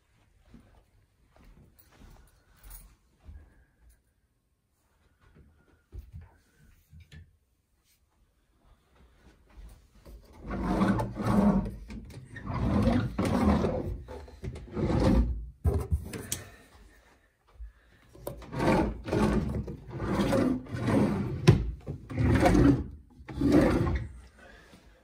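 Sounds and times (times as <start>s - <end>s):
drawers and cabinet doors sliding: 10.3s - 16.4s, 18.2s - 24.2s.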